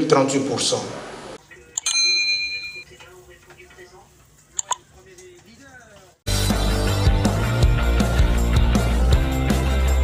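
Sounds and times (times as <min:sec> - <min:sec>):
electronic notification ding: 0:01.8 - 0:02.8.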